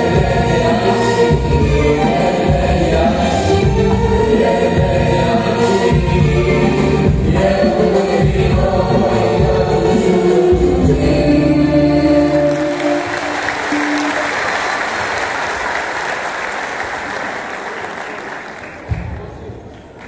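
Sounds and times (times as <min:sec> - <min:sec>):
choir and singers with accompaniment: 0:00.0 - 0:17.4
audience applause: 0:12.4 - 0:20.0.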